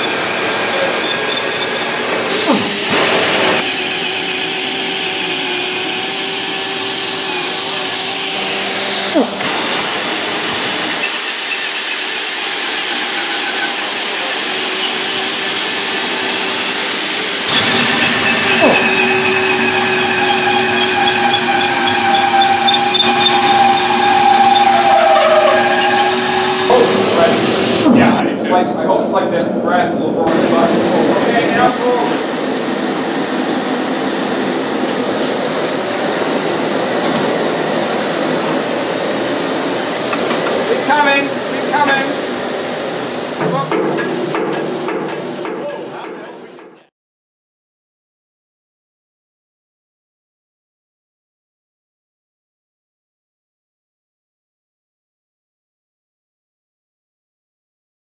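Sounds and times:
compressed air rushing: 1.7 - 13.1, 23.4 - 28.2
faint squealing tones: 17.5 - 28.2.

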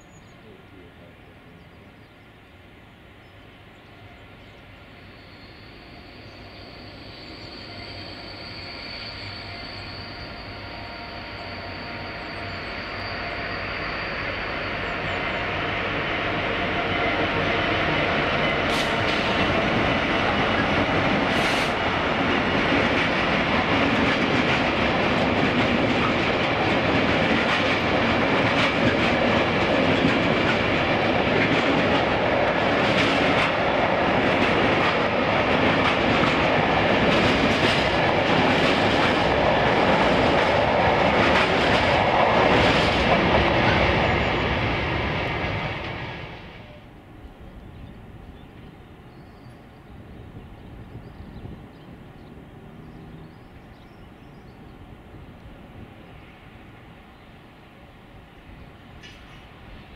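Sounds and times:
diesel locomotive approaching: 0.0 - 59.9
train wheels rumbling: 3.2 - 57.2.

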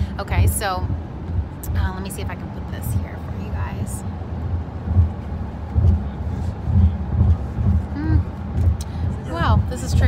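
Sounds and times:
low rumble inside car: 0.0 - 10.0.

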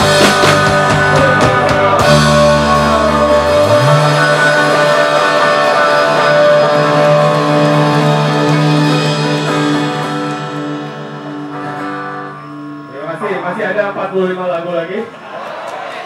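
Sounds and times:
rock band electric guitar chord: 0.0 - 14.3.

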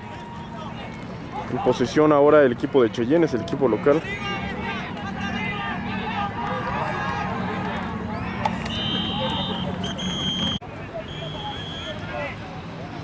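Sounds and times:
voices shouting and talking: 0.0 - 13.0
referee's whistle blasts: 8.2 - 12.0.

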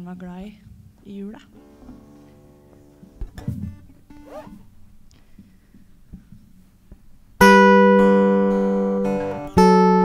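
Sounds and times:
acoustic guitar strumming: 1.5 - 5.1, 7.4 - 10.0.

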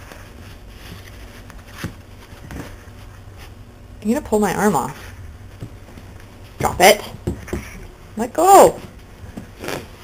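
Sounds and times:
soft scuffling: 0.0 - 3.7
steady low hum: 0.0 - 10.0.

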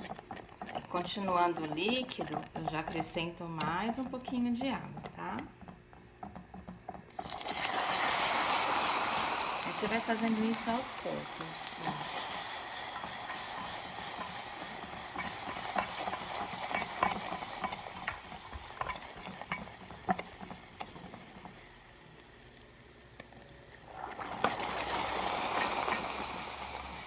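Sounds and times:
spatula scraping and knocking pan: 0.0 - 8.4, 11.4 - 21.7, 24.2 - 26.4
sugar syrup sizzling in a saucepan: 0.0 - 27.0.

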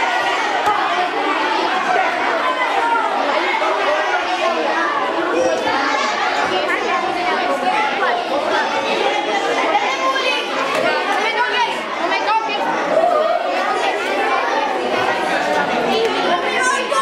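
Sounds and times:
children chattering: 0.0 - 17.0.

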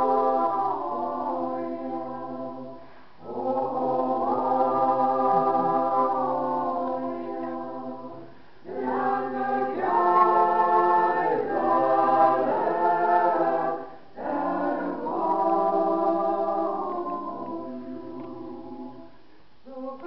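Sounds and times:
small choir singing: 0.0 - 20.0.

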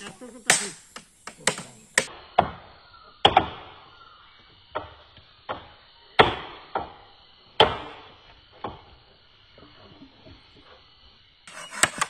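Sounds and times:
hammer striking chisel into wood: 0.5 - 2.1.

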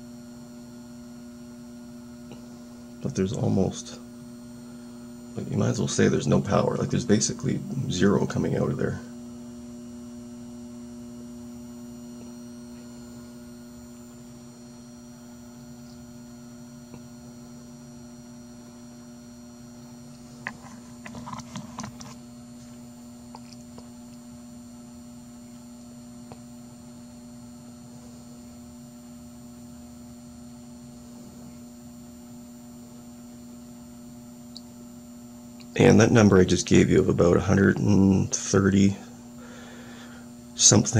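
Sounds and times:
electrical hum with high whine: 0.0 - 40.9.

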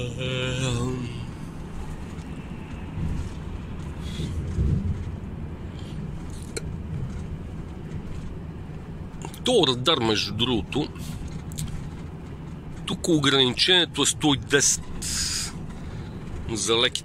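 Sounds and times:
truck engine and road rumble: 0.0 - 17.0.

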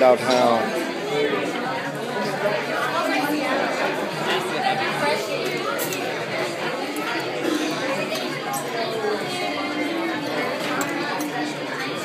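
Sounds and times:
crowd of diners talking: 0.0 - 12.0.

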